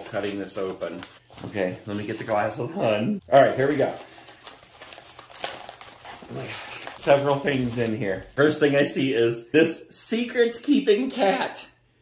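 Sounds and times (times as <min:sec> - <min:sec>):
paper envelope crinkling: 0:03.4 - 0:08.6.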